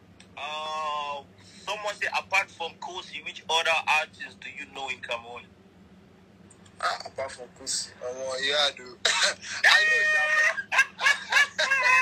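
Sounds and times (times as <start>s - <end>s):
man laughing through phone speaker: 9.1s - 12.0s.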